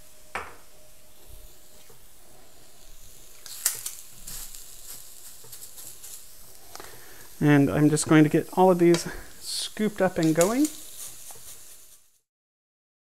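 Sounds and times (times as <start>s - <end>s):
sausage sizzling on a griddle: 0.0s - 12.3s.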